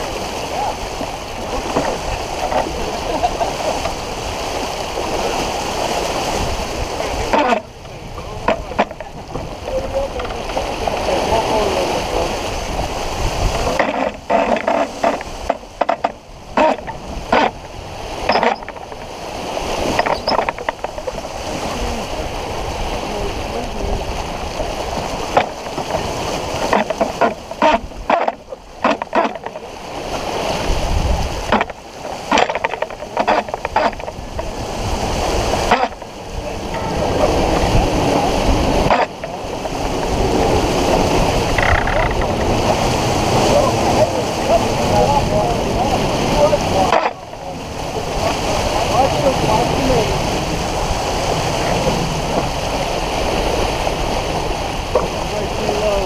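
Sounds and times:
water rushing along boat hull: 0.0s - 56.0s.

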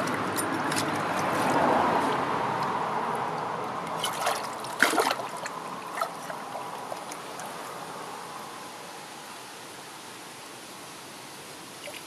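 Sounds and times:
water sloshing and splashing: 0.0s - 8.0s
stream running: 0.0s - 12.0s.

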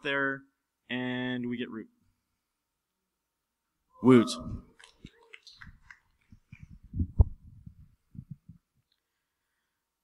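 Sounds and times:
microphone handling thumps: 6.6s - 8.6s.

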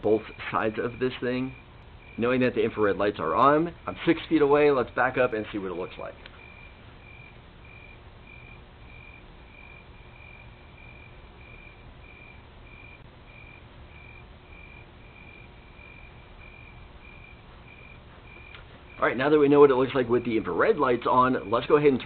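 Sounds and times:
steady hiss and hum: 0.0s - 22.0s.

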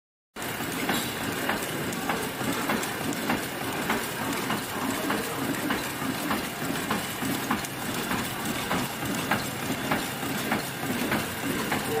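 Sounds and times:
packing machine clattering: 0.4s - 12.0s
sharp machine clicks: 0.4s - 12.0s.

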